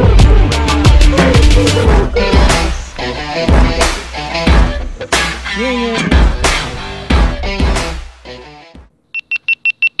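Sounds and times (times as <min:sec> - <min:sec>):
rock music: 0:00.0 - 0:08.9.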